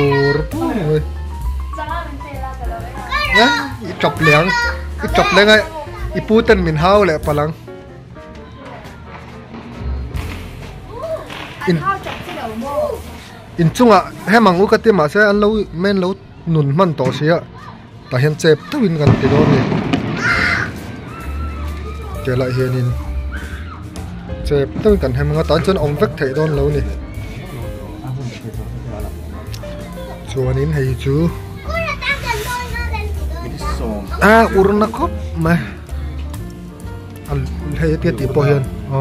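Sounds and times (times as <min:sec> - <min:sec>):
loud jumbled voices: 0:17.5 - 0:24.4.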